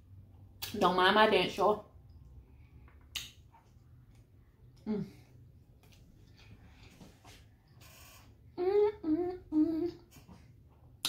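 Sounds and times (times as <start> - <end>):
person humming mm: 8.0 - 10.2.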